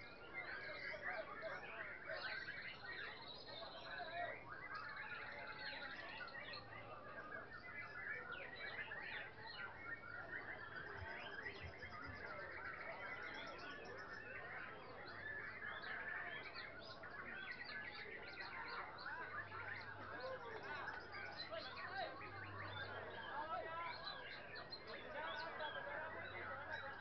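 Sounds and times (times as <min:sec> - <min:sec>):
caged songbirds singing: 0:00.0 - 0:27.0.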